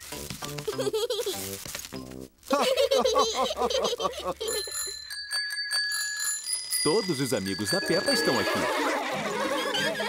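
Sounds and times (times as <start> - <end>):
bicycle bells ringing: 4.4 - 9.8.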